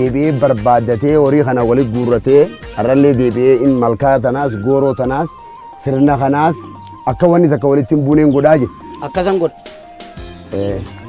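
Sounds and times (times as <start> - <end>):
man chanting: 0.0 - 9.5.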